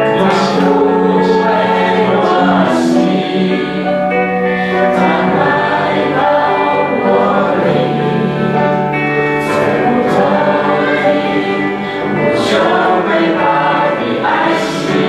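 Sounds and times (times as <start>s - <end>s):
group singing a praise song: 0.0s - 15.0s
instrumental accompaniment: 0.0s - 15.0s.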